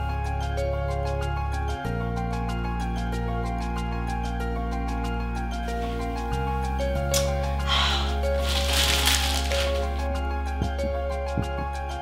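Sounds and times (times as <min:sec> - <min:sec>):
gentle background music: 0:00.0 - 0:12.0
plastic wrapping crinkling: 0:07.2 - 0:10.1.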